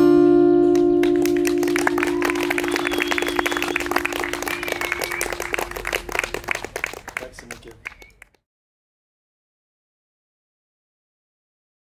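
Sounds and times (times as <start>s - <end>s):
audience clapping: 0.7s - 8.4s.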